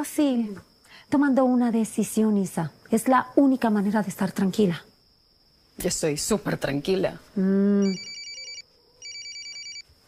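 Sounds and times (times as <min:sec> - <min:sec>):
phone electronic ringtone trill: 0:07.8 - 0:09.8.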